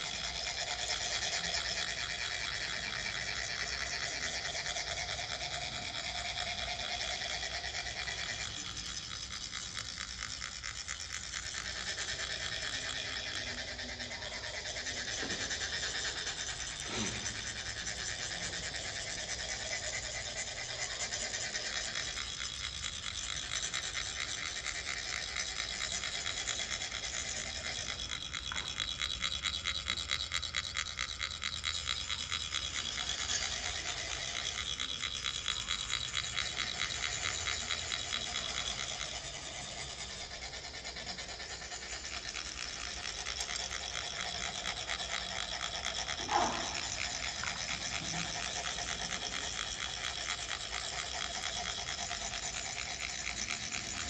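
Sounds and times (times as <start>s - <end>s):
metal funnel rasping: 0.0s - 4.6s, 5.2s - 24.6s, 30.6s - 54.0s.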